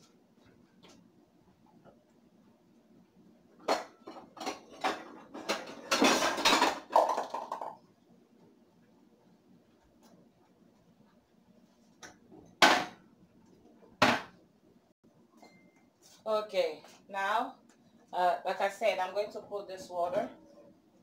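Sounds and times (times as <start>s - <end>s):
kitchenware clattering: 3.6s - 7.8s.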